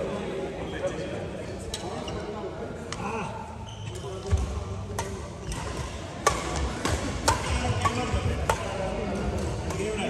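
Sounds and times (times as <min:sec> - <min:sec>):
rackets striking shuttlecock: 0:04.2 - 0:10.0.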